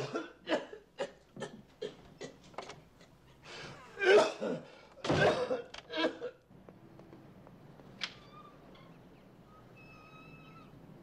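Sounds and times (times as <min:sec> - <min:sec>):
gate hinge squeak: 0:08.2 - 0:10.8.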